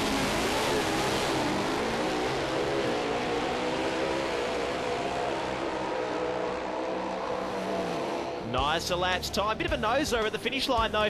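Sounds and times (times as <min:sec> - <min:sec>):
racing motorcycles at full throttle: 0:00.0 - 0:08.6.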